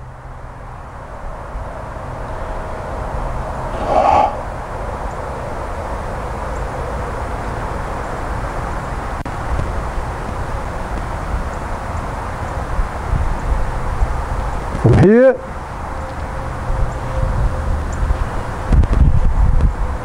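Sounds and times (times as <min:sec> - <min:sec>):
outdoor background noise: 0:00.0 - 0:20.0
short bird call: 0:03.7 - 0:04.5.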